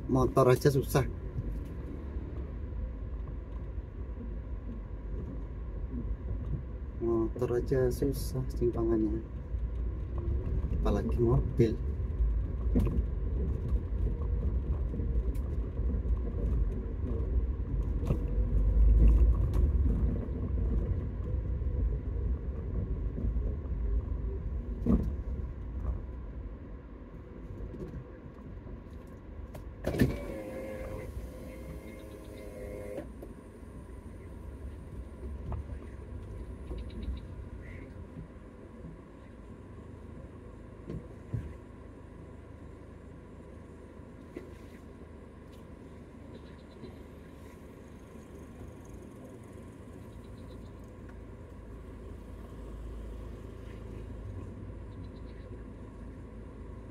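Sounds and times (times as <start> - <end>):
car engine and road rumble: 0.0 - 56.9.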